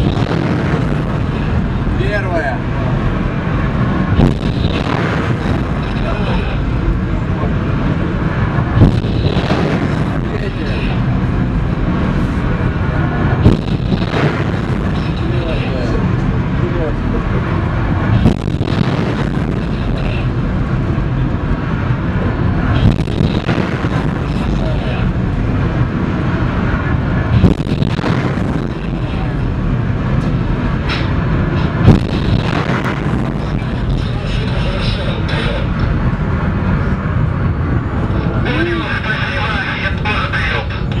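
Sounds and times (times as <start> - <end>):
missiles launching with rushing roar: 0.0 - 40.6
voices: 5.8 - 8.3, 9.0 - 11.3, 14.8 - 17.7, 19.5 - 20.4, 24.1 - 25.2, 28.6 - 29.6, 30.9 - 35.9, 37.9 - 41.0.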